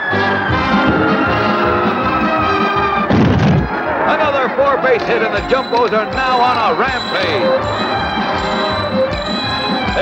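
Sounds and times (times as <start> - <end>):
orchestral cartoon music: 0.0 - 3.1, 4.3 - 10.0
heavy thud: 3.1 - 3.7
high tone sliding downward: 5.1 - 10.0.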